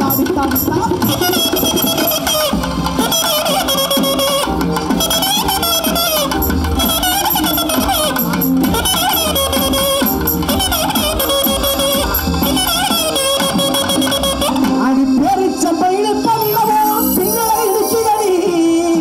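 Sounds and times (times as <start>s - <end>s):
steady drum beat: 0.0s - 15.6s
wavering keyboard melody: 0.0s - 19.0s.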